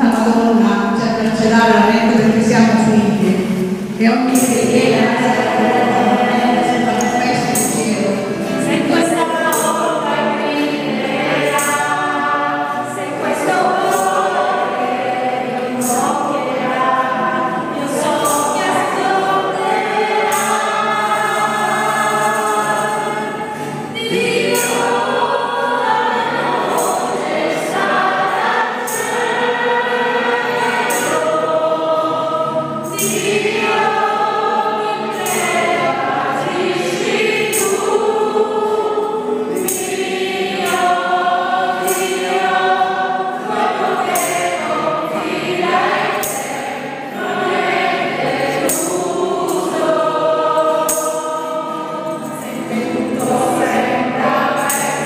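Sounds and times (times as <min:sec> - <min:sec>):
group singing a hymn: 0:00.0 - 0:55.0
sharp percussive beat: 0:01.5 - 0:10.1.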